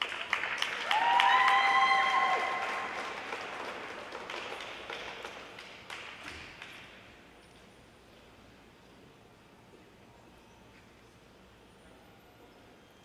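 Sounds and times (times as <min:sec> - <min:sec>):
high cheer: 0:00.0 - 0:03.7
audience applauding: 0:00.0 - 0:06.8.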